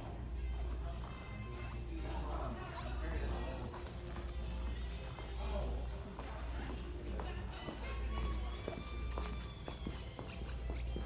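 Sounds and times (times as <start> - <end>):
footsteps on hard floor: 6.1 - 11.0.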